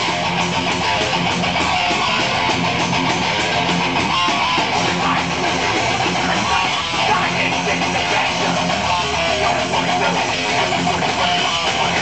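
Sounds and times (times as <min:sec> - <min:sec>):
electric guitar: 0:00.0 - 0:12.0
live band playing: 0:00.0 - 0:12.0.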